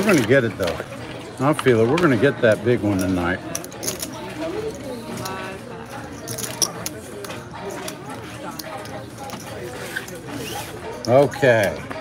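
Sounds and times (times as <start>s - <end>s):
soft background voices: 0.0s - 12.0s.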